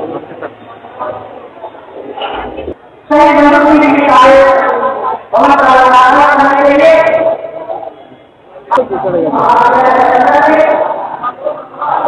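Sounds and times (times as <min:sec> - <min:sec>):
faint muddled voices: 0:00.0 - 0:12.0.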